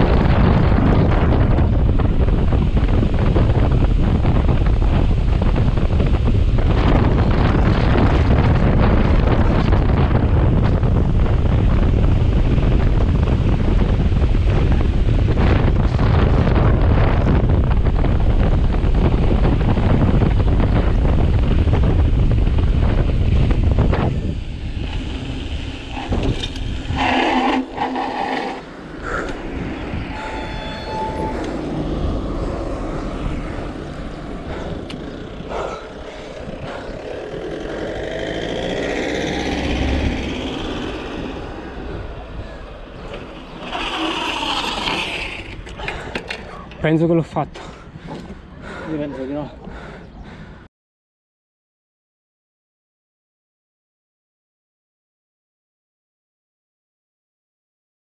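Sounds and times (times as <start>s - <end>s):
bike tyres rolling: 0.0s - 48.5s
wind roar on microphone: 0.0s - 50.7s
bike knocks and squeaks: 43.0s - 46.9s.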